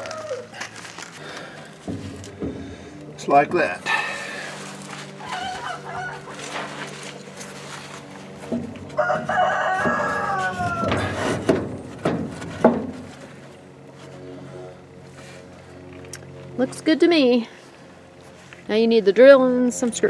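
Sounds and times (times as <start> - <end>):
rooster crowing: 0.0 - 0.7, 5.2 - 6.5, 8.8 - 11.4.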